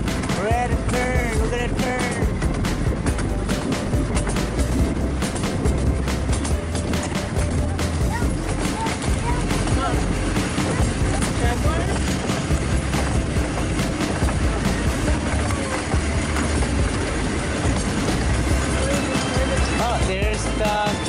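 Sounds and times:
small train rumbling on track: 0:00.0 - 0:21.0.

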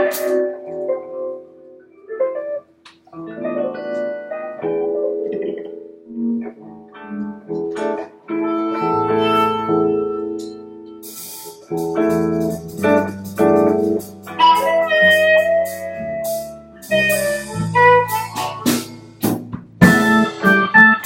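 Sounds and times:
live band playing: 0:00.0 - 0:01.0, 0:07.5 - 0:21.0
drum and cymbal hits: 0:11.0 - 0:21.0.

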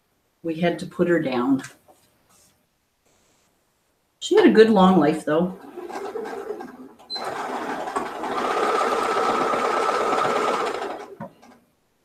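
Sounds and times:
sewing machine stitching: 0:05.5 - 0:11.6.

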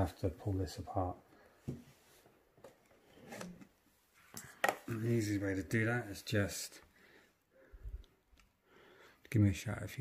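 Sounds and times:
light scrapes and rustles: 0:01.8 - 0:05.0.

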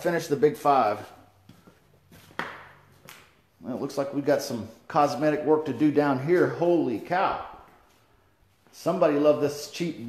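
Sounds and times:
footsteps going down stairs: 0:00.0 - 0:03.4, 0:05.8 - 0:08.9.

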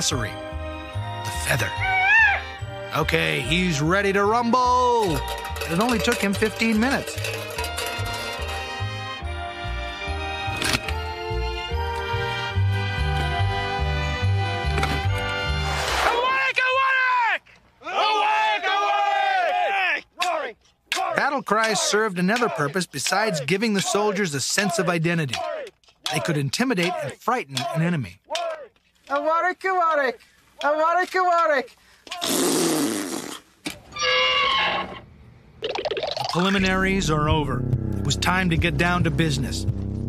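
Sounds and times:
background music: 0:00.0 - 0:16.2, 0:36.4 - 0:40.0
men shouting battle cries: 0:01.7 - 0:02.6, 0:16.2 - 0:29.4
man yelling: 0:16.2 - 0:32.2.

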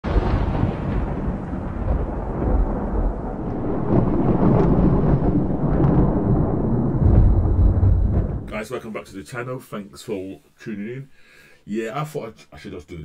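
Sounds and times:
thunder rumbling: 0:00.0 - 0:09.0.

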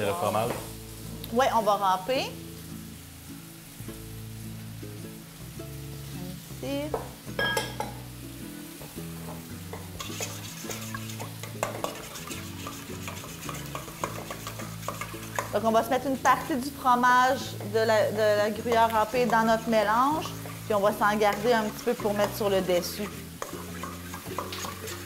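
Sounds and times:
soft background music: 0:00.0 - 0:25.0
cheese grating rasps: 0:10.0 - 0:15.6, 0:23.0 - 0:25.0.

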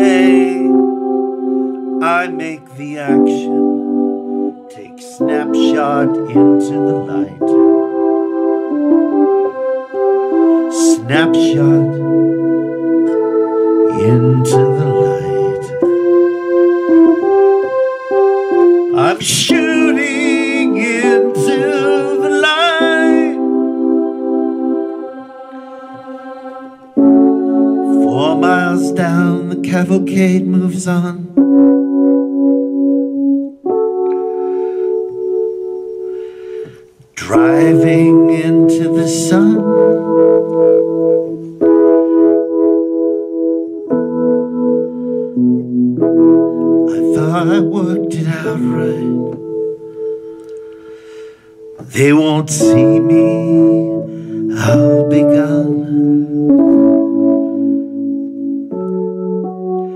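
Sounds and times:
slow piano accompaniment: 0:00.0 - 0:59.9.

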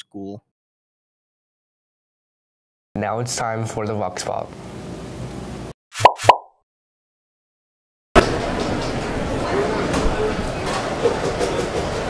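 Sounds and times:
cartoon pop sound effects: 0:06.0 - 0:06.5.

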